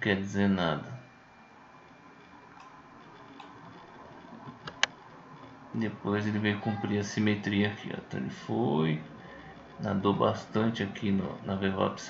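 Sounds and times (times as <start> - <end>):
computer mouse clicks: 4.4 - 5.0.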